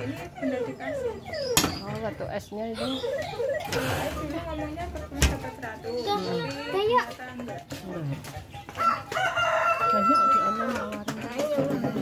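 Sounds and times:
falling electronic tones: 0.0s - 5.0s.

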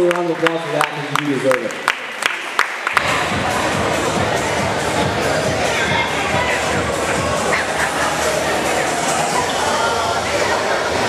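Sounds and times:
rhythmic clapping: 0.0s - 9.3s
crowd noise: 0.0s - 11.0s
music: 3.0s - 11.0s.

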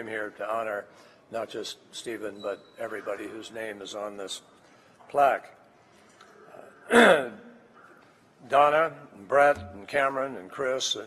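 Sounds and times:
man clearing his throat: 6.8s - 8.0s.

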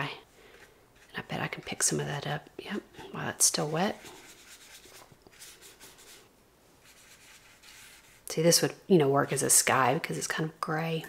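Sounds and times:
paintbrush scrubbing paper: 0.6s - 2.0s, 3.1s - 8.6s.

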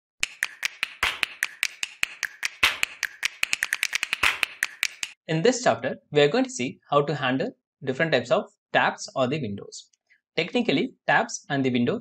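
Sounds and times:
sharp snapping clicks: 0.2s - 5.2s.

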